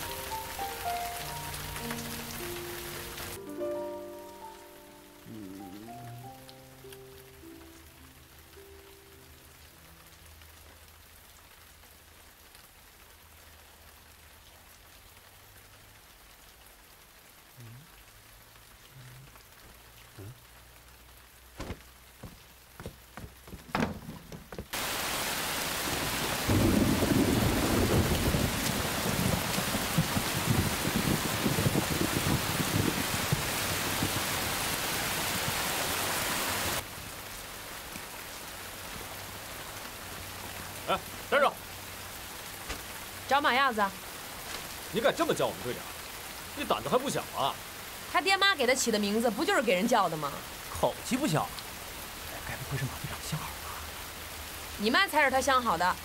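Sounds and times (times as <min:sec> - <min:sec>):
heavy rain: 0:00.0 - 0:56.0
scattered knocks: 0:21.6 - 0:24.8
thunder rumbling: 0:26.0 - 0:34.3.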